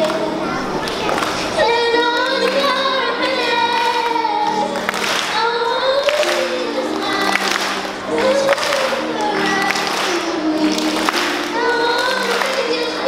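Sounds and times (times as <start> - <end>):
girl singing into a microphone: 0.0 - 13.0
instrumental accompaniment: 0.0 - 13.0.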